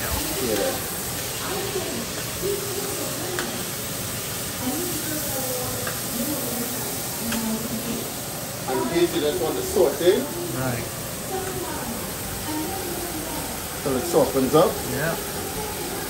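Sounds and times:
onions sizzling in a frying pan: 0.0s - 16.0s
metal spoon clicking on pan: 5.8s - 6.1s.

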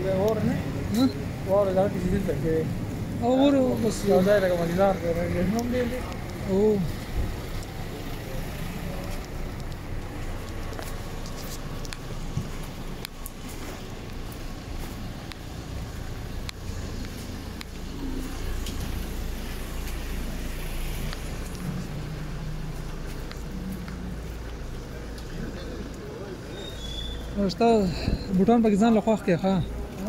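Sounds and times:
traffic rumble on wet street: 0.0s - 30.0s.

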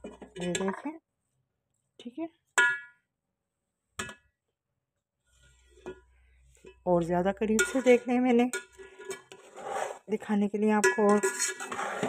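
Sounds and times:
metal spoon clinking on pot: 7.4s - 9.5s, 10.8s - 12.0s.

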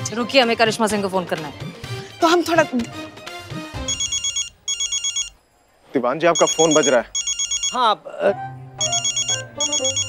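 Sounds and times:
mobile phone ringing: 3.8s - 5.4s, 6.4s - 7.8s, 8.8s - 10.0s.

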